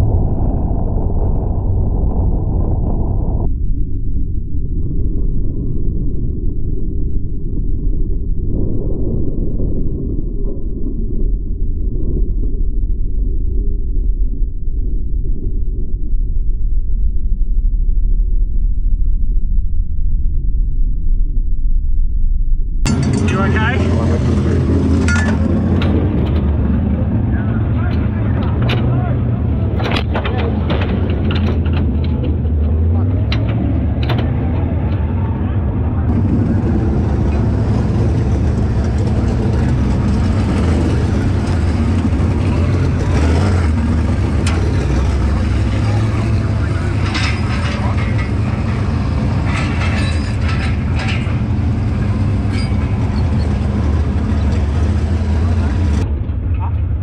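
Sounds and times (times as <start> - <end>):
vehicle engine idling: 22.9 - 57.0.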